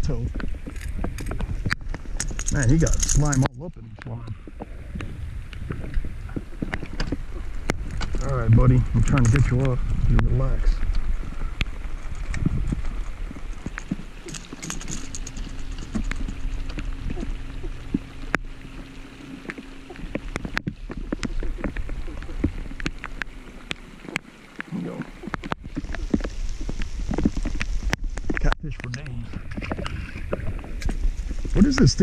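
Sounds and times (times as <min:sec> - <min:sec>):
faint steady hum: 0:00.0 - 0:32.0
rain pattering on a boat: 0:00.0 - 0:32.0
wind rumble on microphone: 0:00.0 - 0:32.0.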